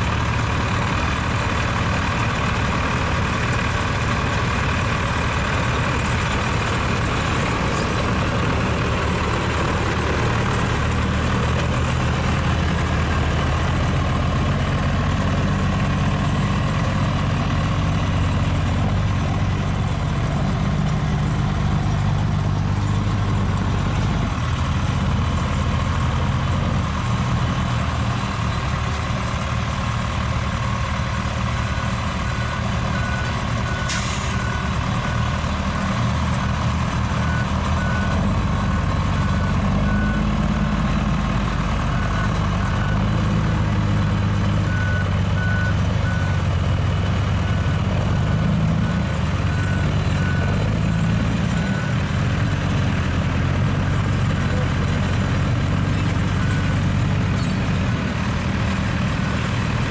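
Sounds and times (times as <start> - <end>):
truck diesel engine running: 0.0 - 59.9.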